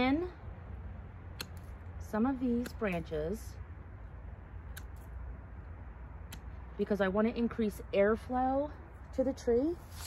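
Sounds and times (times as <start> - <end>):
pruners snipping branch: 1.3 - 3.4, 4.6 - 5.2, 6.2 - 6.7.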